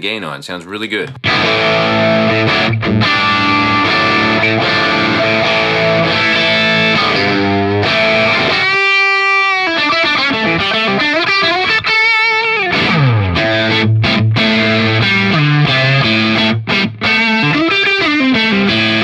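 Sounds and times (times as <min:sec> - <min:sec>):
overdriven electric guitar: 0:01.2 - 0:19.0.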